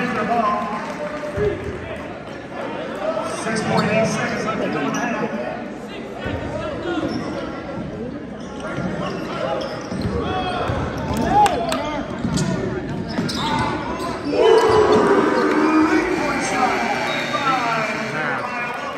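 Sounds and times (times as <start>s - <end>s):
echoing crowd voices: 0.0s - 18.9s.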